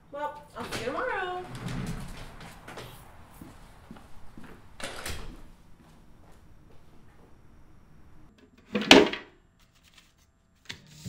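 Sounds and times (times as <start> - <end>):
footsteps on hard floor: 1.5 - 7.4.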